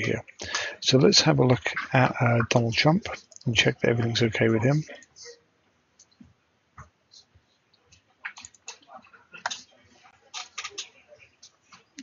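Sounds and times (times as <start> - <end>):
computer mouse clicks: 7.9 - 9.6.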